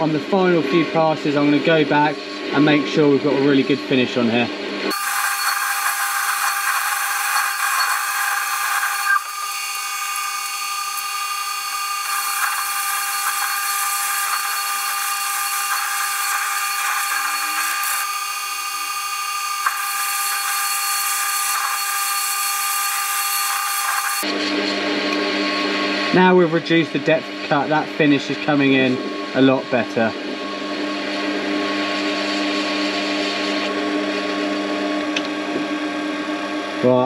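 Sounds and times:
lathe motor whine: 0:00.0 - 0:37.0
cutting tool hissing on metal: 0:04.9 - 0:24.3.

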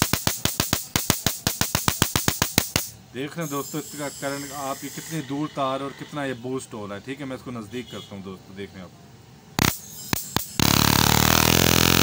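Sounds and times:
buzzing electric arc: 0:00.0 - 0:03.0, 0:09.6 - 0:12.0
sharp electric snaps: 0:00.0 - 0:03.0, 0:09.6 - 0:12.0.

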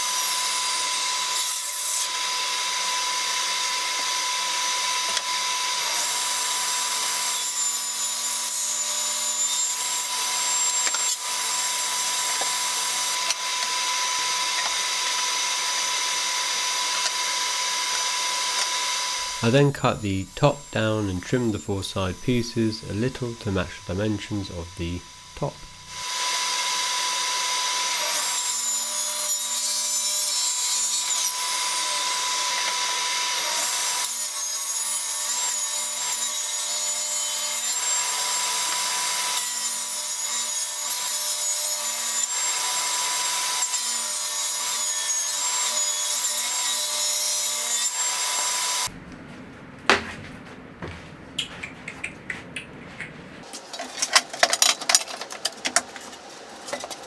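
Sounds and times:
table saw whining: 0:00.0 - 0:48.9.

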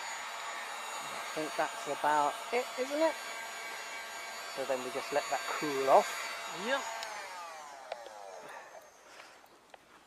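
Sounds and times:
heat gun fan winding down: 0:00.0 - 0:09.8.

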